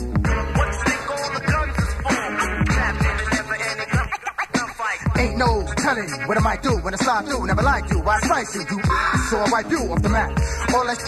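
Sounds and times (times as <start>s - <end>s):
bass: 0.0s - 11.0s
rapping over a beat: 0.1s - 11.0s.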